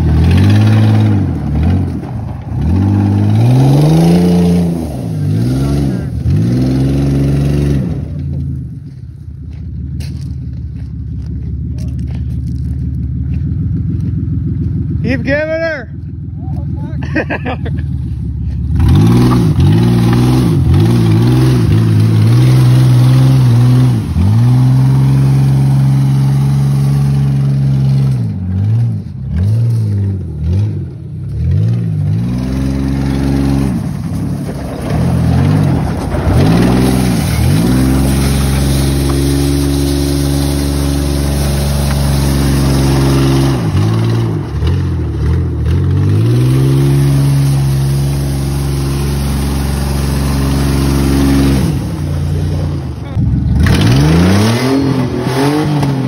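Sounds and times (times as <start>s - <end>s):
engine revving hard: 0.0s - 2.0s, 2.6s - 8.2s, 18.7s - 34.2s, 34.9s - 56.0s
tyres spinning in gravel: 8.0s - 14.8s, 31.3s - 53.7s.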